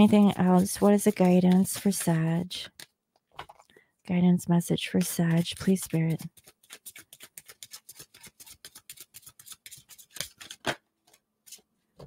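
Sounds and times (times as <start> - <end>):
cards being shuffled: 5.1 - 11.6.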